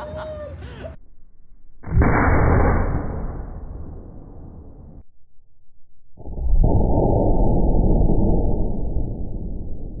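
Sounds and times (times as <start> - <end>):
slowed airbag deploying boom: 6.2 - 10.0.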